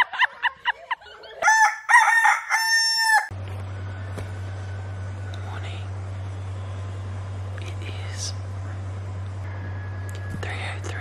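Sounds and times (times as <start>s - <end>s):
rooster crowing: 1.4s - 3.4s, 9.4s - 10.4s.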